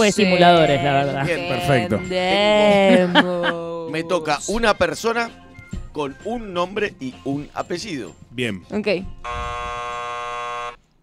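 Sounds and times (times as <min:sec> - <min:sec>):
harsh game-show buzzer: 0:09.2 - 0:10.8.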